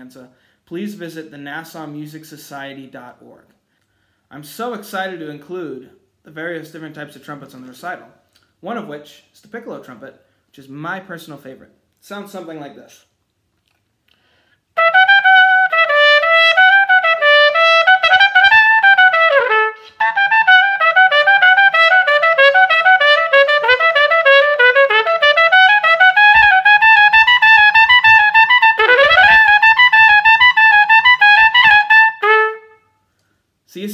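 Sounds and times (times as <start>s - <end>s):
piccolo trumpet playing: 14.8s - 33.0s.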